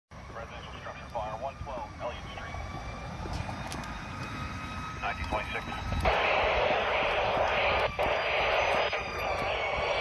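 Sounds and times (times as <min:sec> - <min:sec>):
voice on radio scanner: 0:00.3 - 0:02.6, 0:05.0 - 0:10.0.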